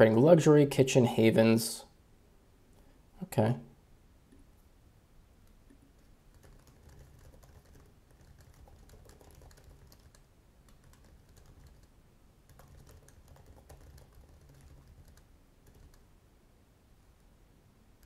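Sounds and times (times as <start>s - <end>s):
faint keyboard typing: 5.4s - 16.1s.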